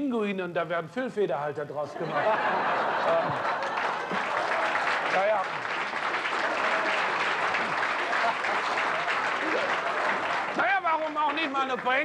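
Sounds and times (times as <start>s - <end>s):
audience applauding: 2.5s - 12.0s.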